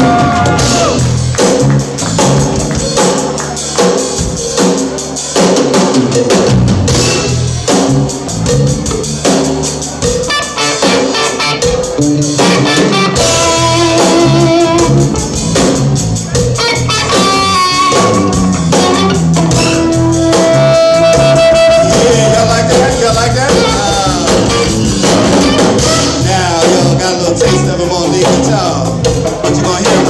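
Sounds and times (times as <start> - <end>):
bass line: 0.0 - 30.0
drum kit and cymbal hits: 0.0 - 30.0.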